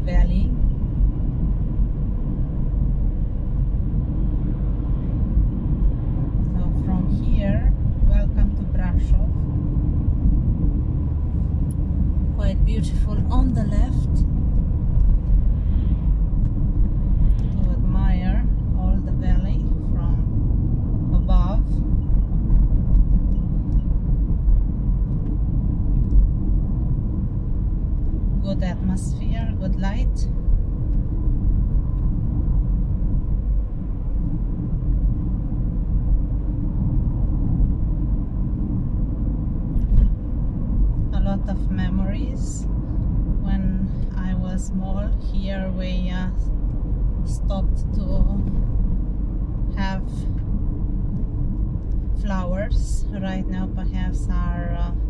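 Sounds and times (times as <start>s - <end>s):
road and engine rumble in car: 0.0s - 55.0s.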